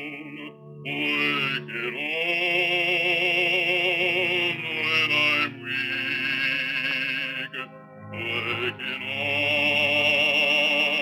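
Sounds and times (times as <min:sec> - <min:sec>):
man singing slow song: 0:00.0 - 0:11.0
musical accompaniment: 0:00.0 - 0:11.0.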